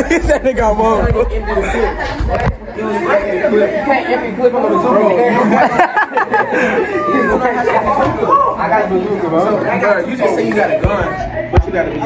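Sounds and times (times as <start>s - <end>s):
teenagers chattering: 0.0s - 12.0s.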